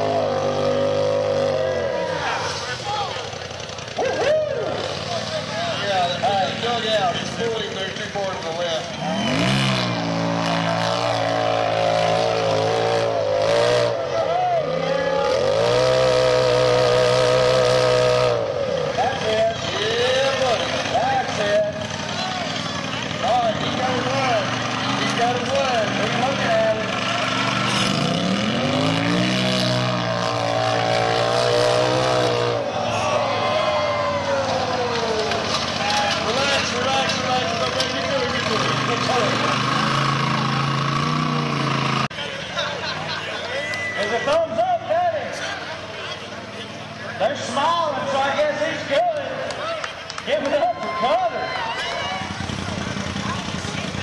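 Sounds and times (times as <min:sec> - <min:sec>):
buggy engine revving hard: 0:00.0 - 0:42.2.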